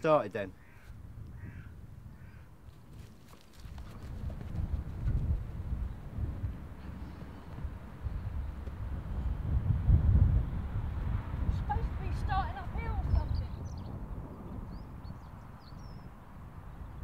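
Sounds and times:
faint bird calls: 0.5s - 2.6s
wind rumble on microphone: 0.6s - 17.0s.

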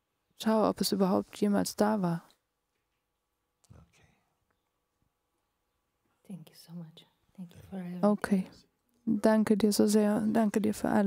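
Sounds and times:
woman speaking softly into microphone: 6.3s - 11.0s.

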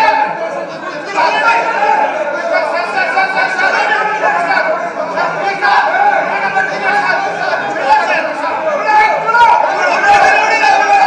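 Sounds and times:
hubbub of overlapping speech: 0.0s - 11.0s.

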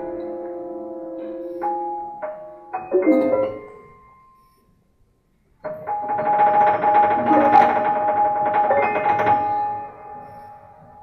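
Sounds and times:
steady held tones: 1.3s - 5.8s.

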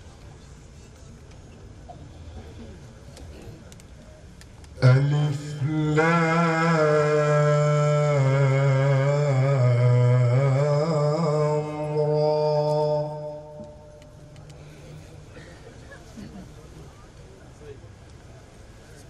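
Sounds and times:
man reciting melodically: 4.7s - 14.4s.

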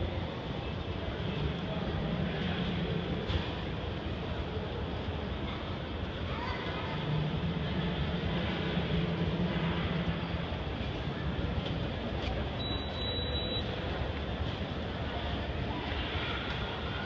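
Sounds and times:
escalator hum and rumble: 0.0s - 17.0s.

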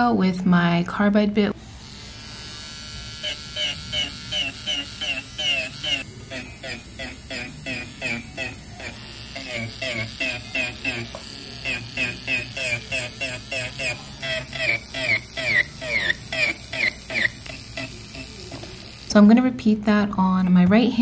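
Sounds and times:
electric nail file humming: 1.4s - 19.8s.

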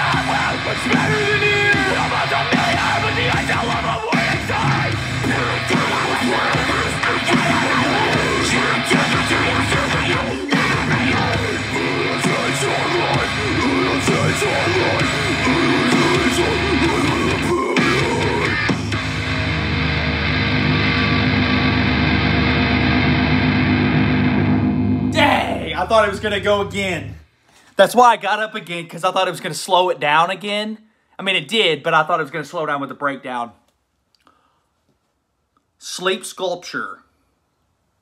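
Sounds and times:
distorted electric guitars: 0.0s - 27.2s
rock drums: 0.0s - 27.2s.

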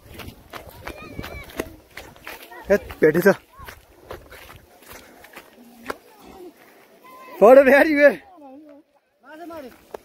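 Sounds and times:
footsteps on dry dirt: 0.0s - 7.7s, 8.6s - 10.0s.

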